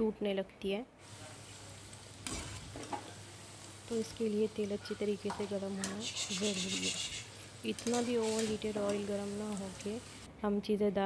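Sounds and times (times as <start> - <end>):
fritters sizzling in hot oil: 1.0 - 10.3
wire skimmer stirring: 1.1 - 10.3.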